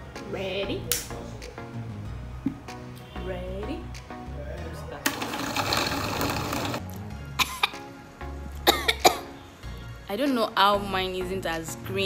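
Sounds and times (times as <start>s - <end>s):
background music: 0.0s - 12.0s
blender running: 5.1s - 6.8s.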